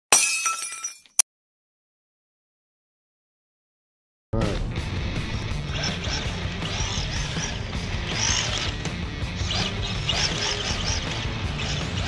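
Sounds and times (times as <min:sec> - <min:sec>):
glass shattering: 0:00.1 - 0:01.2.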